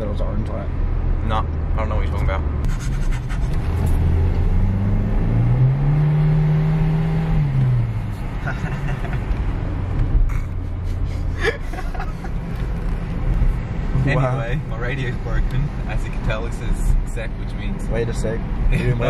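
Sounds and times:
car engine from inside cabin: 0.0 - 19.0
road and tyre rumble: 0.0 - 19.0.

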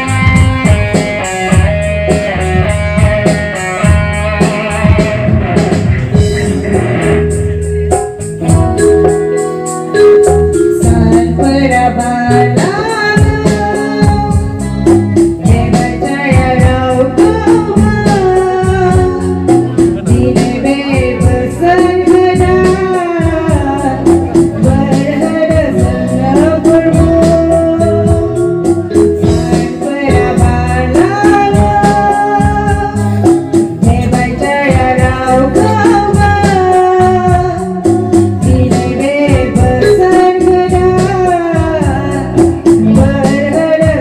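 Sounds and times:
amplified backing music with beat: 0.0 - 44.0
woman singing gospel into microphone: 10.7 - 44.0.

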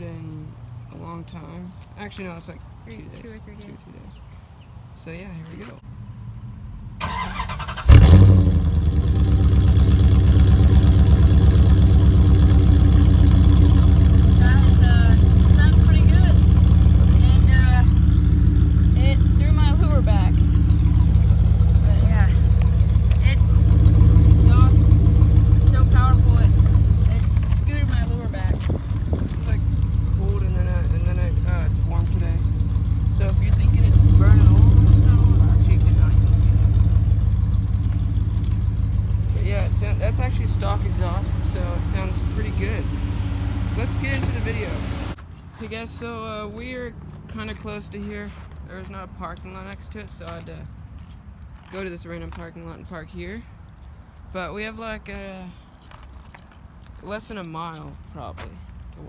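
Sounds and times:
car engine starting and idling: 5.8 - 50.8.

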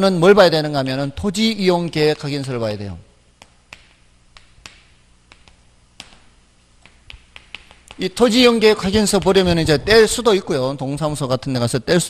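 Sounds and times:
faint room hum: 0.0 - 12.0
chalk clicking on chalkboard: 3.4 - 8.2.

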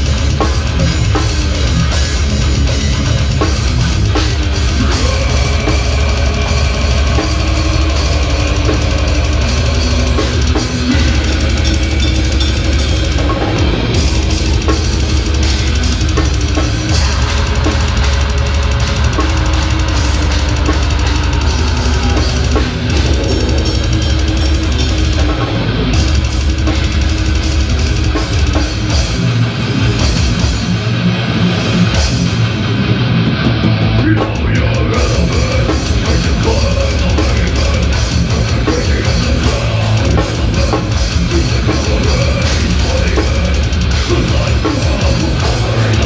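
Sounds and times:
bass drum: 0.0 - 30.8, 33.3 - 46.0
electric guitars: 0.0 - 46.0.

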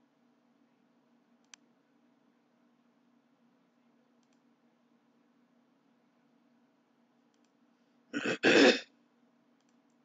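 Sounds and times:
low room hum: 0.0 - 10.0
computer mouse clicks: 1.4 - 1.7, 4.1 - 4.5, 7.2 - 7.6, 9.6 - 10.0.

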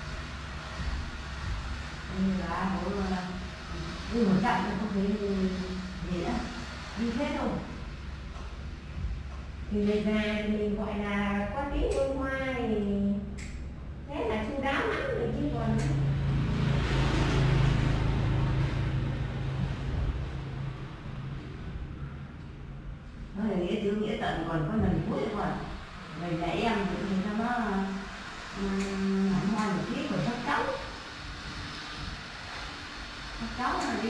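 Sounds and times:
rushing noise: 0.0 - 11.7, 13.7 - 34.0
low motor hum: 0.0 - 34.0
low rumble with hiss: 0.0 - 34.0.

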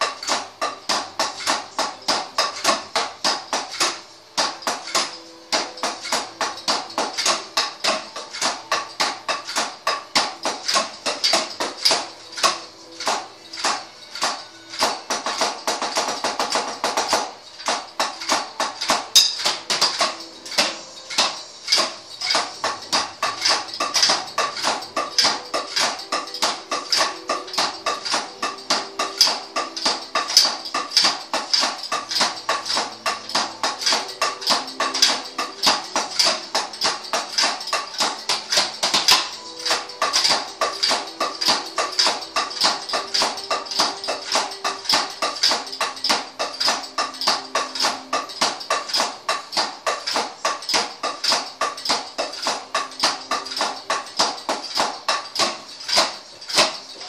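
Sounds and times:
drumsticks tapping drum pads: 0.0 - 57.0.

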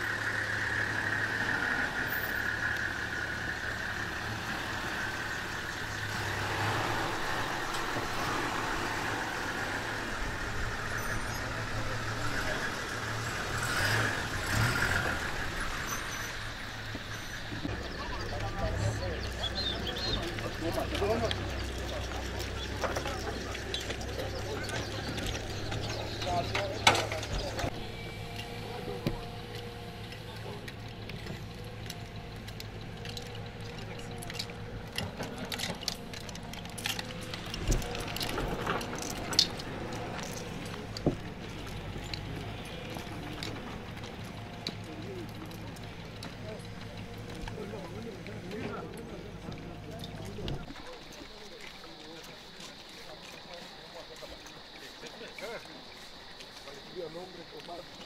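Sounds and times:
indistinct voices talking: 0.0 - 58.0
gear clicks and knocks: 14.3 - 58.0.

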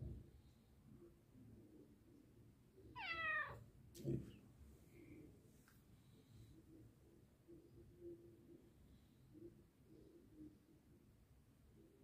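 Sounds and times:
cat meowing: 2.9 - 3.6.

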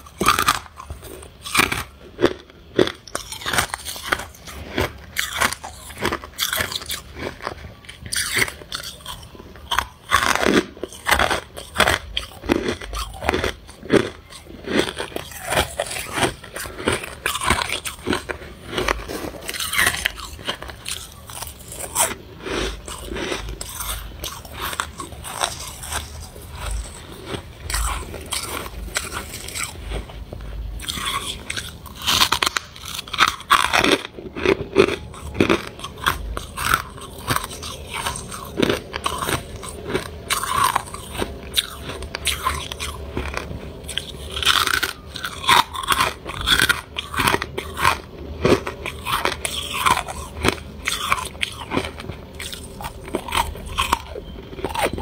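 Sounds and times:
crunchy chewing of frost: 0.0 - 55.0.

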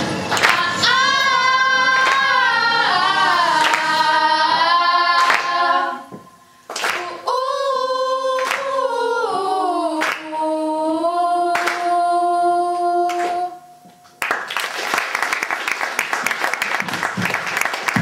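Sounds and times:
girls choir singing unaccompanied: 0.0 - 13.6
sharp clap: 0.3 - 0.7, 2.0 - 2.3, 3.6 - 4.0, 5.2 - 5.6, 6.7 - 7.1, 10.0 - 10.2, 11.6 - 11.8, 14.1 - 18.0.

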